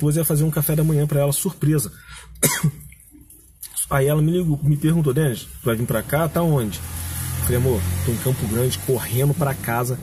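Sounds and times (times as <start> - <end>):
man coughing: 2.4 - 2.9.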